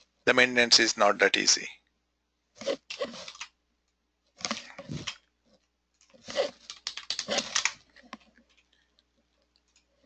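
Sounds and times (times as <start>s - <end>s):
computer keyboard typing: 6.3s - 8.2s.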